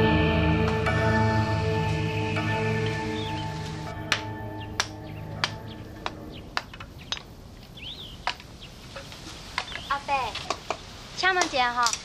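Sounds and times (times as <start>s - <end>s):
soft background music: 0.0s - 6.6s
faint bird chirps: 2.6s - 8.8s, 9.6s - 10.3s.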